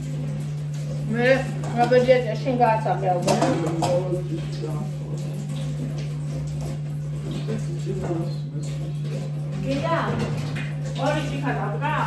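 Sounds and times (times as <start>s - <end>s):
woman talking: 1.1s - 5.0s, 9.6s - 10.4s, 11.0s - 12.0s.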